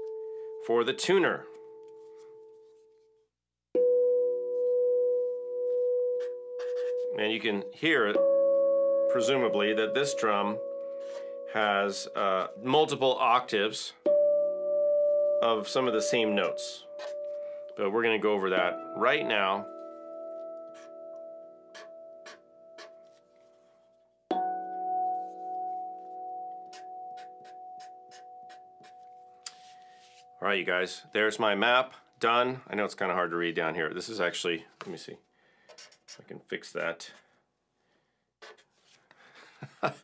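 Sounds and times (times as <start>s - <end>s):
steel tongue drum notes: 5.8s - 23.0s, 24.3s - 29.8s.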